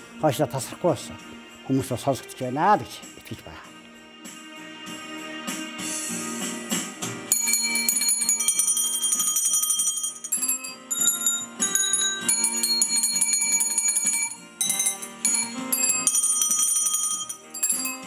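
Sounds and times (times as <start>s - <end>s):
hand bells ringing: 7.3s - 18.0s.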